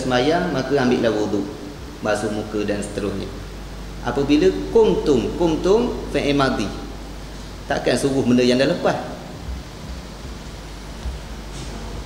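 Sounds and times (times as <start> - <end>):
steady background hiss: 0.0 - 12.0
faint low bumps: 9.2 - 12.0.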